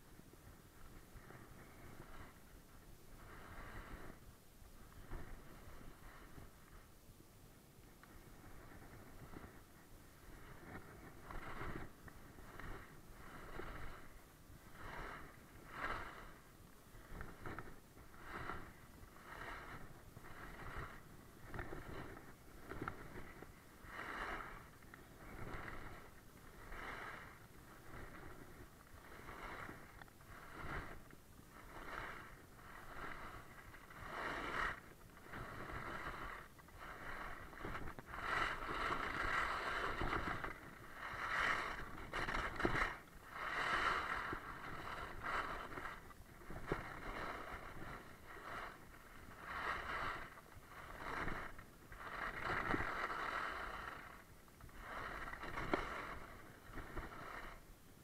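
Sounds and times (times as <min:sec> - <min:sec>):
skis scraping over icy snow: 0:00.0 - 0:58.0.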